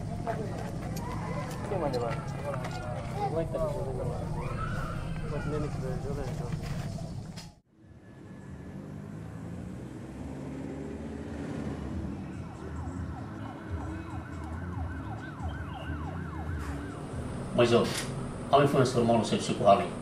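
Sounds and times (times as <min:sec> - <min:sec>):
steady low rumble: 0:00.0 - 0:07.5
siren yelping: 0:01.0 - 0:07.5, 0:12.3 - 0:18.5.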